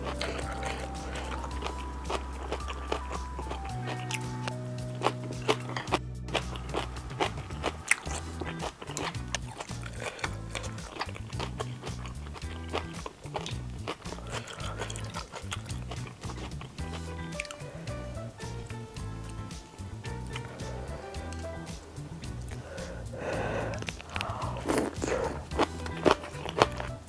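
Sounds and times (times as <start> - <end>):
background music with bass: 0.0 - 27.0
wet chewing clicks and smacks: 0.0 - 27.0.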